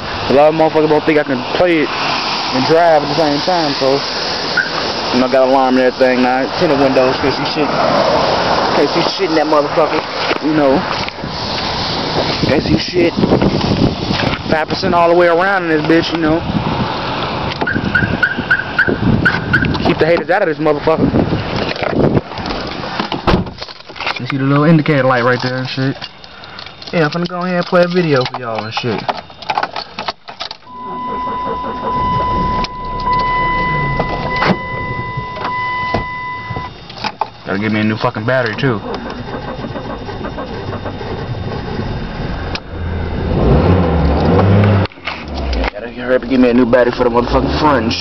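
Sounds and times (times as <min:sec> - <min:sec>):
car warning chime beeps: 0:04.6 - 0:04.8, 0:17.6 - 0:19.7, 0:30.6 - 0:40.8
loud low bass hum: 0:30.7 - 0:48.0.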